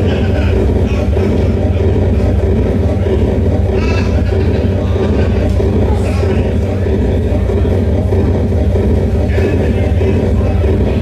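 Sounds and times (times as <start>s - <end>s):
bass-heavy synthesized music: 0.0s - 11.0s.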